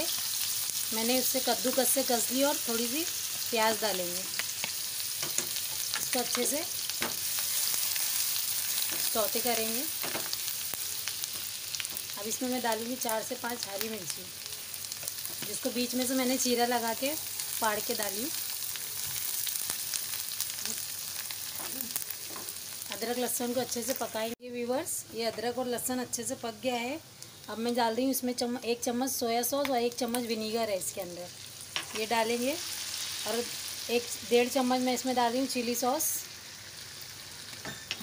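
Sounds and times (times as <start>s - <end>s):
food sizzling in hot oil: 0.0s - 38.0s.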